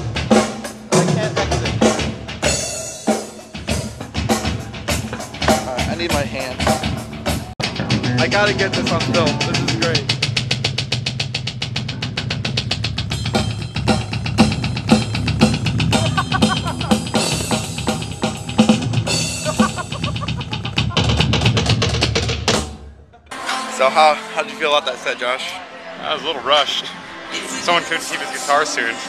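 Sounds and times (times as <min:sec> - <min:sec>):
drum kit playing: 0:00.0 - 0:22.9
bass drum hits: 0:03.7 - 0:11.0, 0:12.1 - 0:22.6.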